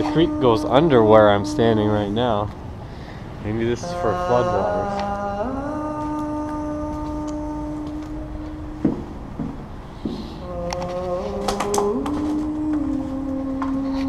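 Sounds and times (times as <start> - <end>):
man humming long notes: 0.0 - 2.5, 3.4 - 14.0.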